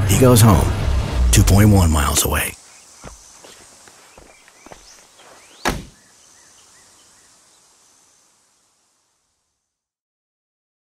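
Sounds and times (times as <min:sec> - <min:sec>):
soft footsteps: 0:02.7 - 0:06.0
car door shutting: 0:05.6 - 0:06.0.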